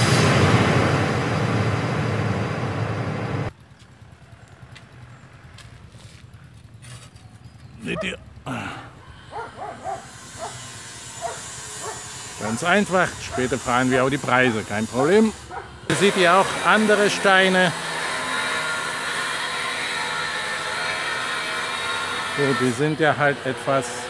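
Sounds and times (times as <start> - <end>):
dog barking: 7.8 - 8.2, 9.3 - 12.2, 13.2 - 15.9.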